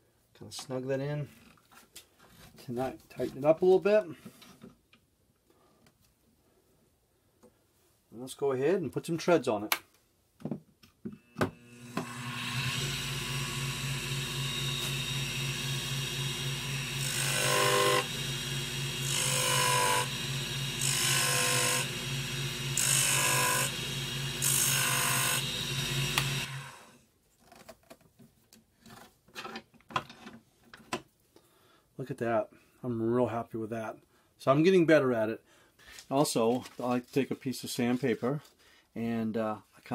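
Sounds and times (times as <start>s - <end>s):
wood lathe motor hum: 11.4s - 27.0s.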